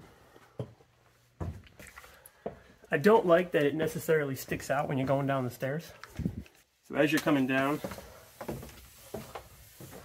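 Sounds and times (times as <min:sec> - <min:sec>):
footsteps on carpeted stairs: 0:00.4 - 0:02.7, 0:07.8 - 0:10.0.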